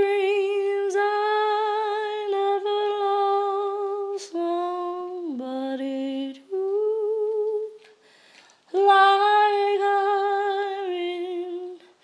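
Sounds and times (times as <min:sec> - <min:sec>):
woman singing wordless melody: 0:00.0 - 0:08.0, 0:08.7 - 0:12.0.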